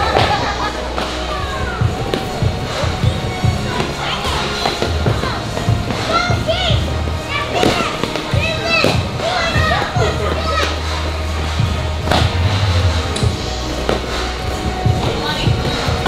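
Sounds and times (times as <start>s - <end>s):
background music with bass: 0.0s - 16.0s
children shouting excitedly: 0.4s - 4.4s, 5.1s - 11.0s.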